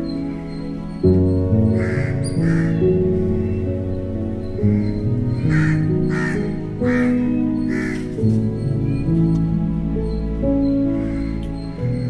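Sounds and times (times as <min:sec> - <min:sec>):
music of slow held notes: 0:00.0 - 0:12.0
crow cawing: 0:01.7 - 0:03.7, 0:04.6 - 0:08.2, 0:10.9 - 0:11.5.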